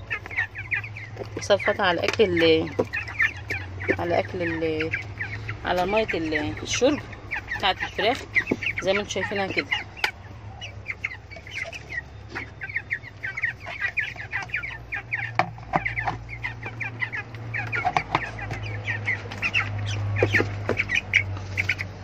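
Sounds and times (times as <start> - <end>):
chicks peeping: 0.0 - 22.0.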